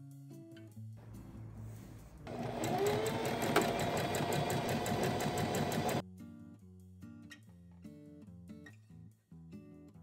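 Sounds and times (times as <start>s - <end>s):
sewing machine stitching: 2.3s - 6.0s.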